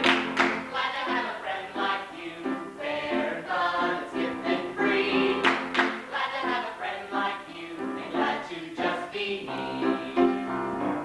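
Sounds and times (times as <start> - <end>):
voices singing together: 0.0 - 10.9
musical accompaniment: 0.0 - 11.0.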